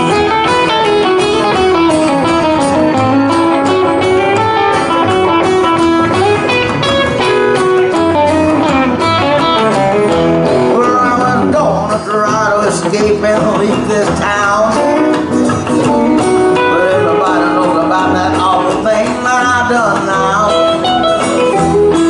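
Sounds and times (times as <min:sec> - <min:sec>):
electric guitar lead: 0:00.0 - 0:22.0
live band playing: 0:00.0 - 0:22.0
walking bass line: 0:00.0 - 0:22.0.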